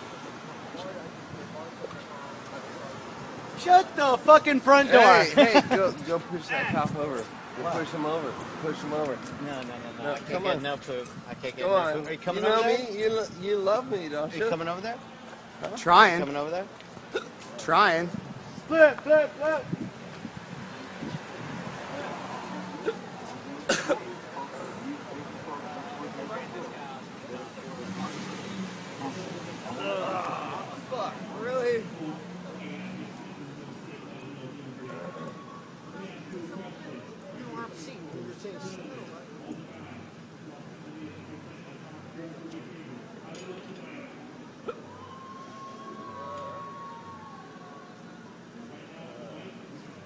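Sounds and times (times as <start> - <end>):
faint street noise: 0.0 - 50.0
person coughing: 23.7 - 24.1
distant siren: 45.0 - 48.2.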